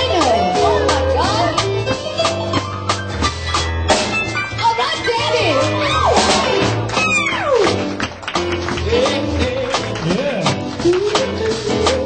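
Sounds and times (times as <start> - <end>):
soul band music: 0.0 - 12.0.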